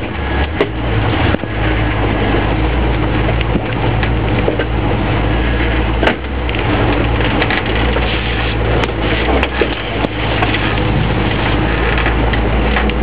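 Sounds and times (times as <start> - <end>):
sharp cracks and knocks: 0.0 - 1.5, 2.9 - 4.8, 6.0 - 13.0
car engine running low: 0.0 - 13.0.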